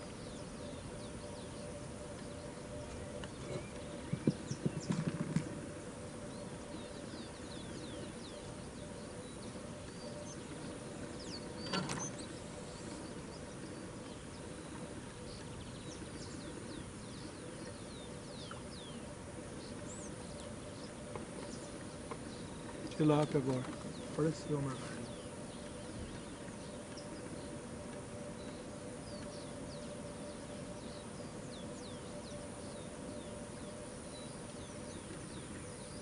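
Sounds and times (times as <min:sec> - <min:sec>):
birds chirping: 0:00.0 - 0:36.0
steady low hum: 0:00.0 - 0:36.0.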